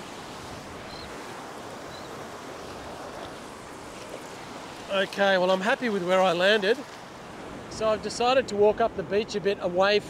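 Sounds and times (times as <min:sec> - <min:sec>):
small waves breaking on sand: 0:00.0 - 0:10.0.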